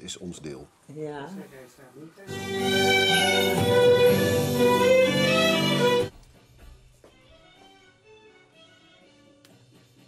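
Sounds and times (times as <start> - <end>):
violin and plucked strings music: 2.3 - 6.1.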